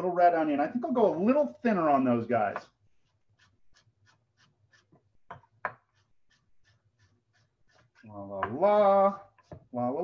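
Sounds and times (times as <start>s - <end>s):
knife tapping on cutting board: 5.3s - 5.9s.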